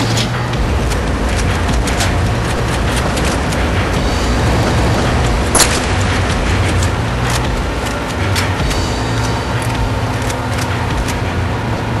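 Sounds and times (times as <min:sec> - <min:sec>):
low rumble: 0:00.4 - 0:12.0.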